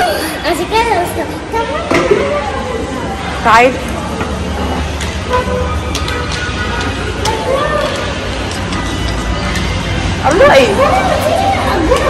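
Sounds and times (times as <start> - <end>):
cars passing: 0.0 - 12.0
car horn toot: 5.2 - 7.0.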